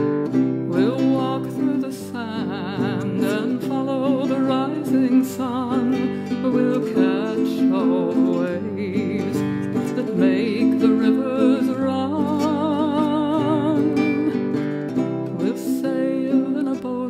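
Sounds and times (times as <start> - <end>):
person singing: 0.0 - 17.0
strummed acoustic guitar: 0.0 - 17.0.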